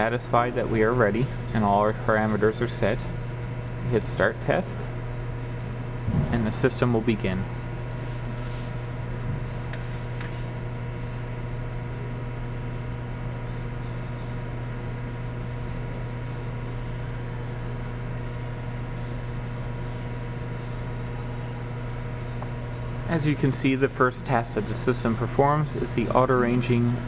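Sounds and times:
steady low electrical hum: 0.0s - 27.0s.

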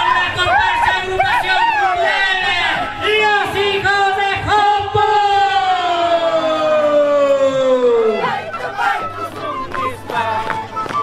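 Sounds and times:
parade crowd: 0.0s - 11.0s.

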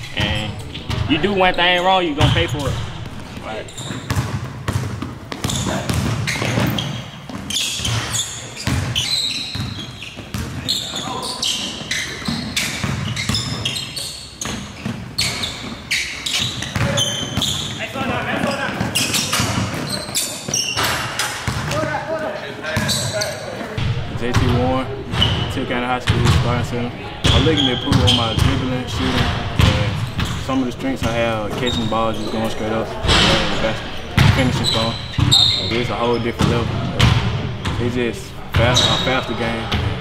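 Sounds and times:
people talking: 0.0s - 3.8s, 17.8s - 19.6s, 21.7s - 40.0s
basketball bouncing on wooden floor: 0.2s - 1.2s, 2.2s - 11.0s, 14.4s - 21.9s.

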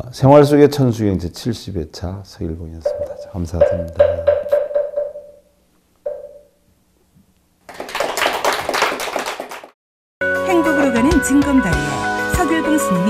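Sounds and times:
ringing tone: 2.8s - 5.5s, 6.1s - 6.6s
audience applauding: 7.7s - 9.8s.

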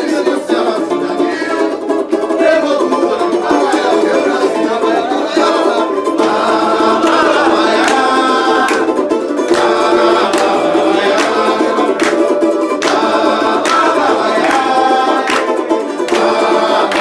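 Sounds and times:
group singing samba: 0.0s - 17.0s
strummed banjos: 0.0s - 17.0s
hand claps: 7.0s - 17.0s.

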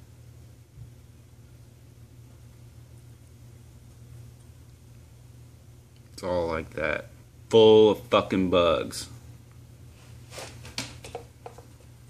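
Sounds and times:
rustles and handling noises: 9.8s - 12.0s.

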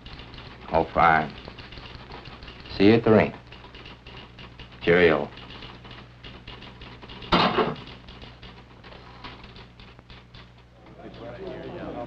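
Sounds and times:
loud clatter: 0.0s - 12.0s
typewriter keys clicking: 0.0s - 12.0s.

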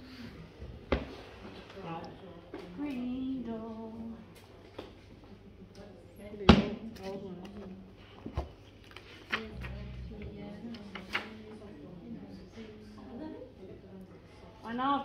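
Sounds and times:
faint voices: 9.2s - 14.7s
humming: 9.4s - 11.1s.

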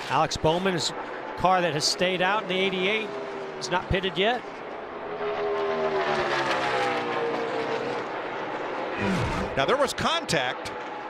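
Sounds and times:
race cars passing at speed: 0.0s - 11.0s.

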